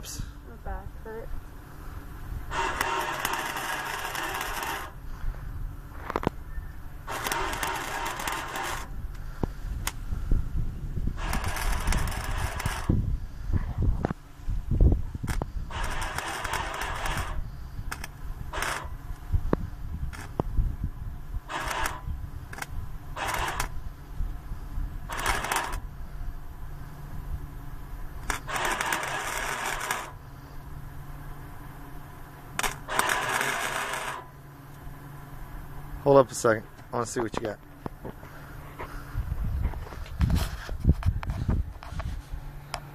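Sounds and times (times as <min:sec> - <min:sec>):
steady low hum: 0:00.0 - 0:42.9
crackling welding arc: 0:02.4 - 0:05.0, 0:07.0 - 0:09.2, 0:11.1 - 0:13.0, 0:15.2 - 0:19.3, 0:20.1 - 0:20.5, 0:21.4 - 0:23.9, 0:25.0 - 0:25.9, 0:28.1 - 0:30.2, 0:32.5 - 0:34.8.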